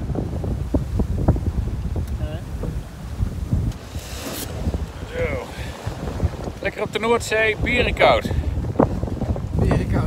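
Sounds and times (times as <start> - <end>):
water rushing: 0.0 - 10.0
wind buffeting microphone: 0.0 - 10.0.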